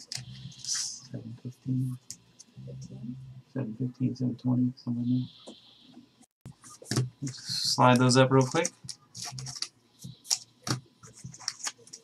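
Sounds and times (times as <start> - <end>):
cards rustling: 6.7 - 12.0.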